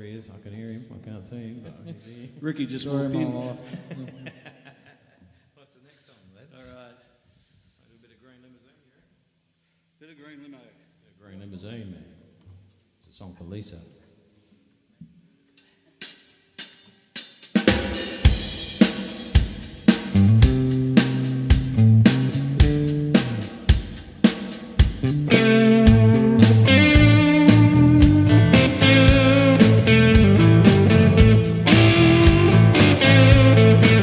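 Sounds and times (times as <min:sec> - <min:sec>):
drum kit beat: 0:15.9 - 0:34.0
electric bass line: 0:20.0 - 0:23.6, 0:24.9 - 0:34.0
electric guitars: 0:20.0 - 0:23.9, 0:24.8 - 0:34.0.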